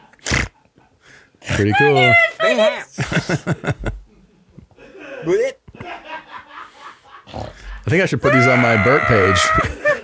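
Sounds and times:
woman laughing hard: 0:08.3 - 0:10.0.

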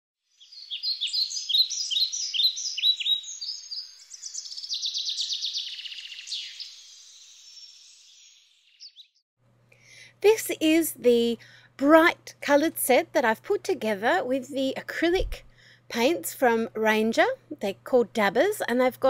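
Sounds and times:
bird chirping: 0:00.2 - 0:09.2
bird trilling: 0:00.4 - 0:09.2.

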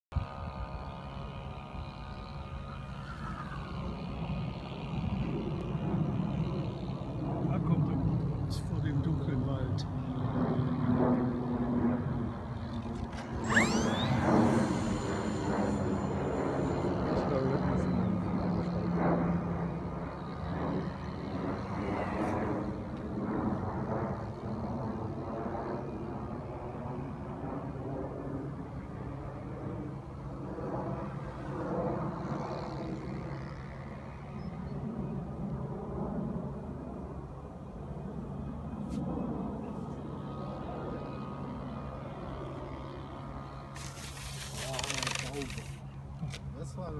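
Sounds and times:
wind buffeting microphone: 0:00.2 - 0:37.4
rising whistle: 0:13.2 - 0:18.2.

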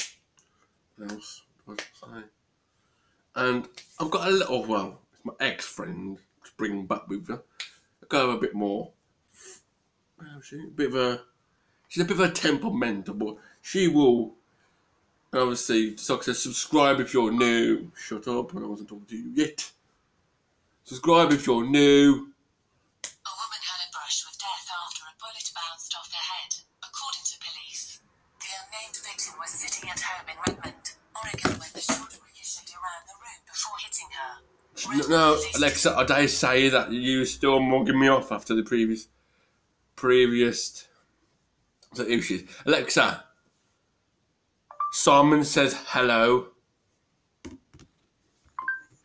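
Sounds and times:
tinny voice through smart speaker: 0:23.3 - 0:36.4
smart speaker electronic beep: 0:44.7 - 0:45.1, 0:48.6 - 0:48.9.

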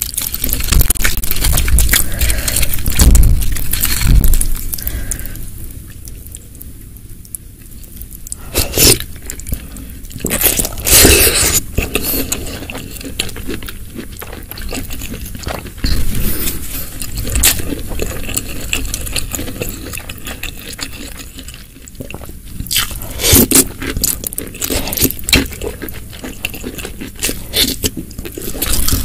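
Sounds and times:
wet chewing and slurping: 0:00.0 - 0:06.5, 0:07.6 - 0:29.0.

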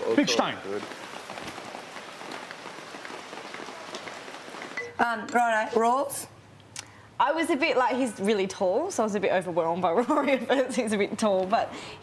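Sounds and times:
rain on hard surfaces: 0:00.0 - 0:06.3.

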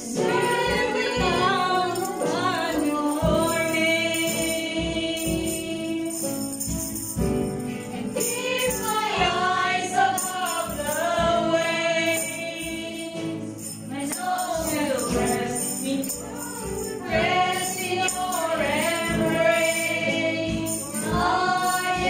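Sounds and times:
group singing worship song: 0:00.0 - 0:22.0
tambourine jingles: 0:00.0 - 0:22.0.

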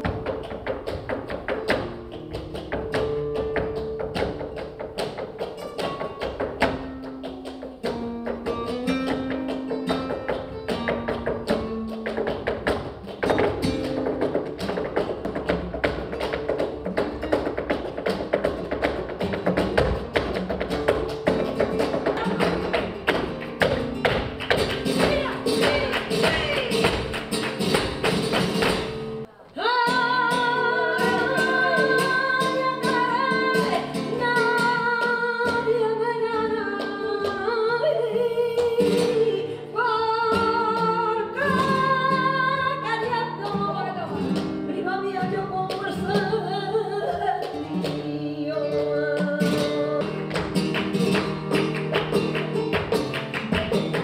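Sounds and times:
rhythmic hand-clapping: 0:00.0 - 0:29.3, 0:30.3 - 0:39.6, 0:40.3 - 0:54.0
heeled shoes striking stage floor: 0:00.0 - 0:29.7, 0:50.0 - 0:54.0
flamenco guitar: 0:00.0 - 0:54.0
woman singing long wavering notes: 0:29.6 - 0:33.3.

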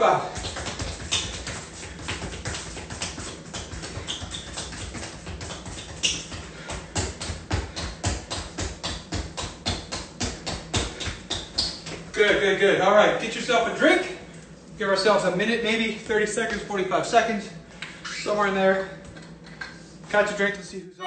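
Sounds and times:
soccer ball tapped between feet: 0:00.3 - 0:12.4.

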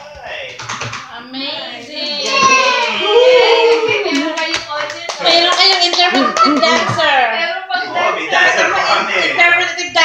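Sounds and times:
hand clapping: 0:03.6 - 0:07.0
voices talking: 0:05.2 - 0:10.0.

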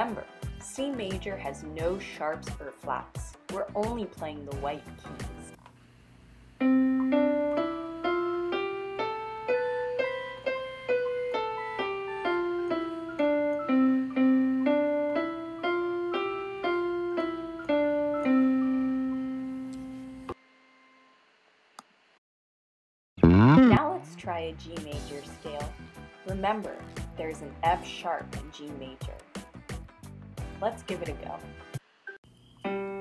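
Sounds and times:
piano playing a scale: 0:06.6 - 0:19.4, 0:23.2 - 0:23.8.

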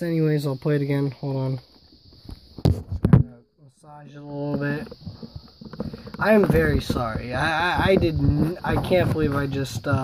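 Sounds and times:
faint steady hiss: 0:00.0 - 0:10.0
person speaking: 0:03.2 - 0:05.2, 0:05.8 - 0:10.0
knocks and clatters of handling: 0:04.4 - 0:10.0.

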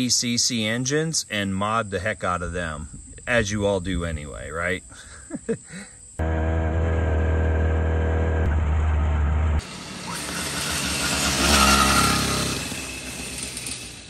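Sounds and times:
two-stroke engine running: 0:06.2 - 0:09.0, 0:09.6 - 0:14.0
motorized bicycle passing by: 0:09.6 - 0:14.0.

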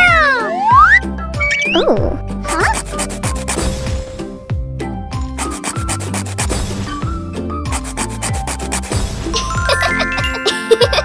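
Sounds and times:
background music: 0:00.0 - 0:11.0
nail file rasping on fingernails: 0:02.5 - 0:03.6, 0:05.4 - 0:06.6, 0:07.7 - 0:09.0.

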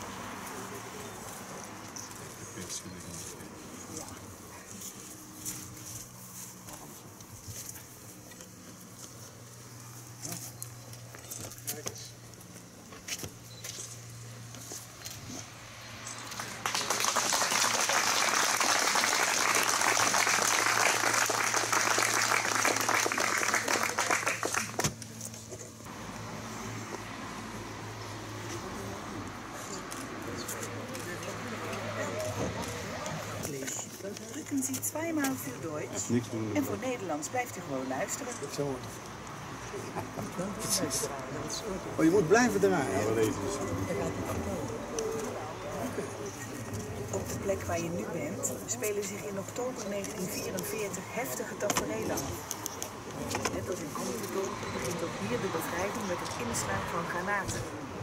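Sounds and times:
crowd applause: 0:16.3 - 0:24.8
murmuring voices: 0:28.0 - 0:58.0.

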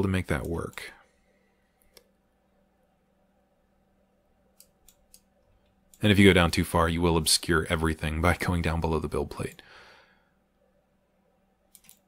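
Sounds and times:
computer mouse clicks: 0:01.8 - 0:02.2, 0:04.5 - 0:06.0, 0:11.7 - 0:12.0.

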